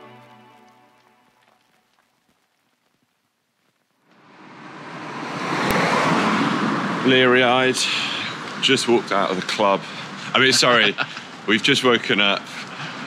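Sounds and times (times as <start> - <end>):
background music: 0.0 - 1.4
steady rushing noise: 4.1 - 13.0.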